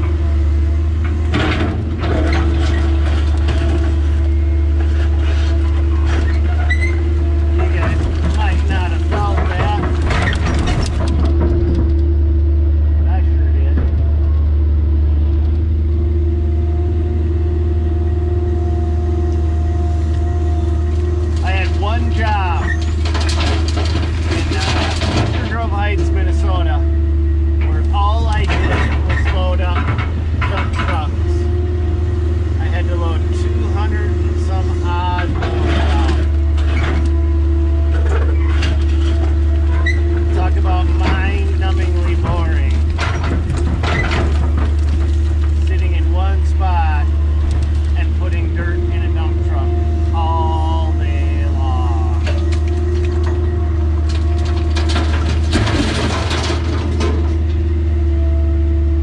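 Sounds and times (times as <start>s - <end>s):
dirt and rock rattling: 0.0s - 58.2s
excavator diesel engine running: 0.0s - 59.0s
hydraulic whining: 0.0s - 59.0s.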